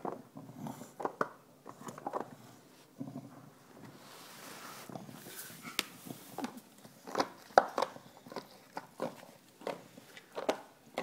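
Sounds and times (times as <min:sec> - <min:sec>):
dog chewing on a bottle: 0:04.9 - 0:11.0.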